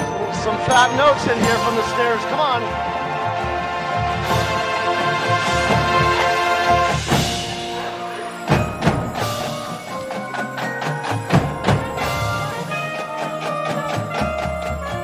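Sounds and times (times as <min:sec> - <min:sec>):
drum and bugle corps playing: 0:00.0 - 0:15.0
drum and cymbal hits: 0:03.9 - 0:15.0.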